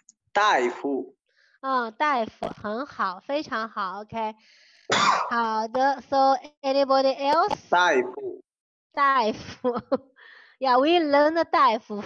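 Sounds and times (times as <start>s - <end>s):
person clearing throat: 0.4s - 1.1s, 4.9s - 5.4s.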